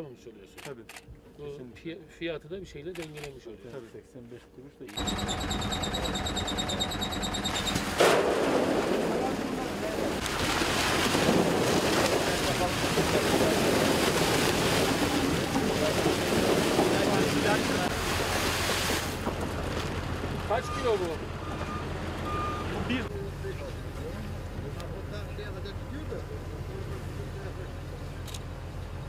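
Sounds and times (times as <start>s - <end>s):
tractor engine idling: 5.0s - 7.9s
rapid high beeping: 5.0s - 8.0s.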